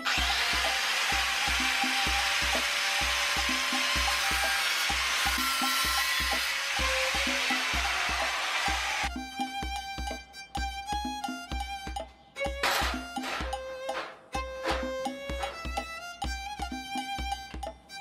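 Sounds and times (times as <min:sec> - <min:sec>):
angle grinder cutting steel: 0:00.0 - 0:09.1, 0:12.6 - 0:15.7
background music with beat: 0:00.0 - 0:18.0.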